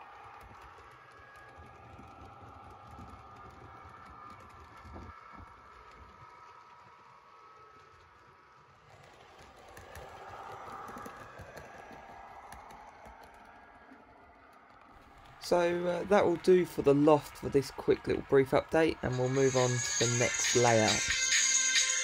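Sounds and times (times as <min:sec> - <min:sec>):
model train wheels clicking: 0:00.0 - 0:22.0.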